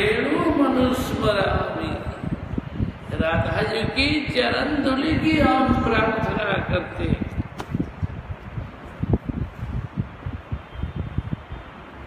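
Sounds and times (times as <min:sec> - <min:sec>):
air buffeting microphone: 0:00.0 - 0:12.0.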